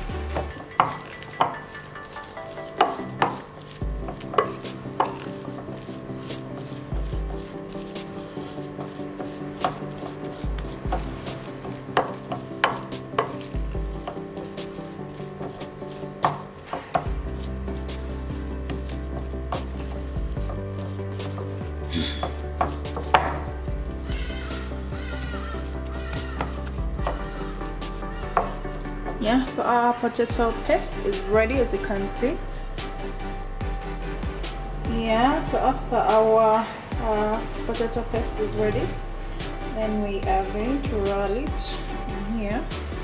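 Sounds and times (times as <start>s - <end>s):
stirring and squelching paste: 0.0s - 43.0s
utensil clinking on glass bowl: 0.4s - 5.6s.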